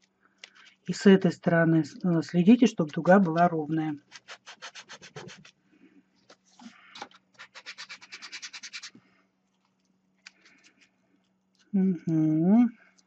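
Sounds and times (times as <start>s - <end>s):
aluminium foil crinkling: 1.9s - 5.6s, 6.2s - 11.7s.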